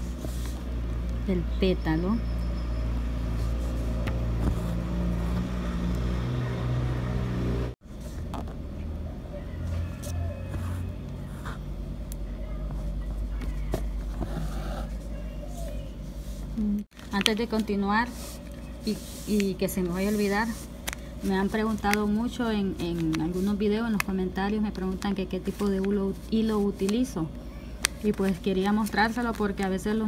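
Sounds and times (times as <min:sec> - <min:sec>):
faint voices: 0:08.9 - 0:16.9.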